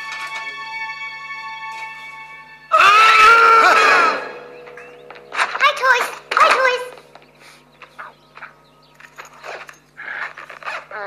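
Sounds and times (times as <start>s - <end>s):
soft film-score chord: 0.0s - 2.8s, 3.8s - 9.2s
animated character screaming: 2.7s - 4.3s.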